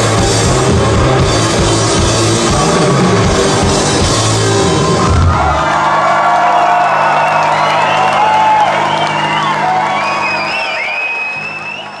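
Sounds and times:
rock band final chord ringing: 0.0 - 5.8
crowd cheering: 2.3 - 12.0
crowd whistling and screaming: 4.2 - 12.0.

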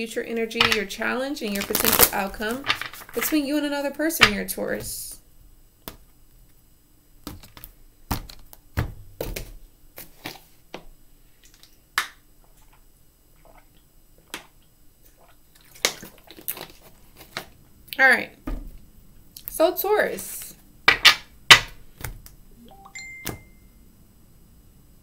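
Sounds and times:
plastic bottle crackling: 0.6 - 3.6.

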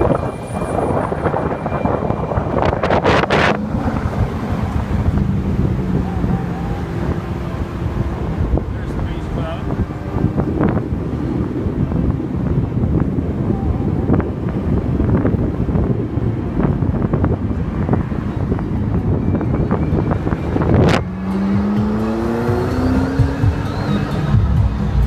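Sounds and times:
car engine and road rumble: 0.0 - 25.0
rising pitched tone: 0.0 - 25.0.

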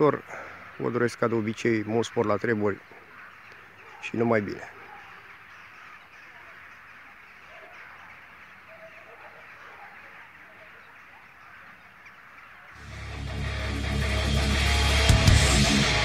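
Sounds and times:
distant bird calls: 0.0 - 16.0
guitar music: 12.8 - 16.0.

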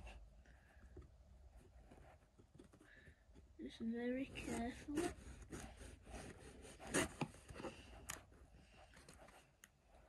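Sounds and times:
knife scraping along tape: 4.3 - 7.6.

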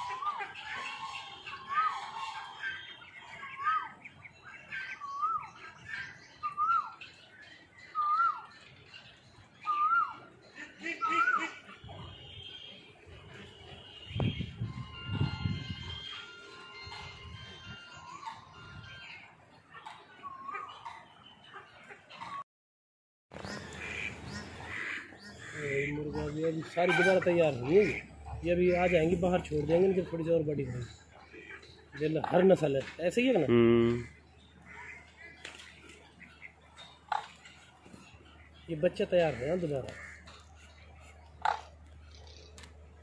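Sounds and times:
ducks quacking: 0.0 - 6.6, 10.1 - 18.4, 19.0 - 22.4, 23.4 - 43.0
man calling out: 33.4 - 34.0.

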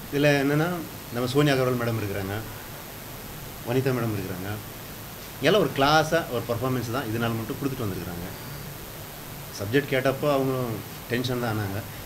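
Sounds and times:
room hiss: 0.0 - 12.0
man talking: 0.1 - 2.6, 3.6 - 4.7, 5.4 - 8.6, 9.5 - 12.0.

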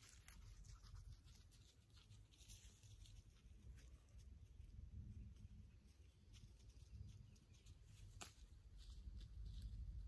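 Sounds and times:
faint outdoor rumble: 0.0 - 10.0.

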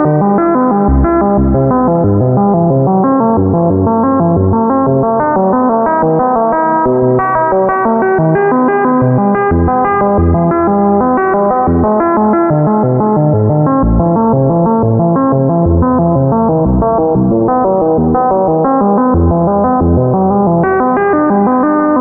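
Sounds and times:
low bass notes: 0.0 - 21.2
synthesizer arpeggiated notes: 0.0 - 22.0.

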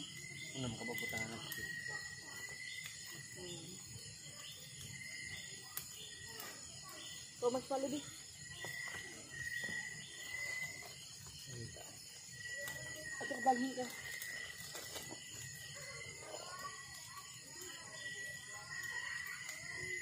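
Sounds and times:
night insects droning: 0.0 - 20.0
wood fire crackling: 0.0 - 20.0.

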